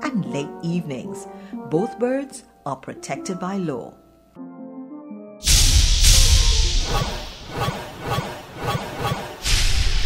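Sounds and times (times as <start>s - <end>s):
loud whoosh: 5.4s - 10.0s
whip-like hits: 5.4s - 10.0s.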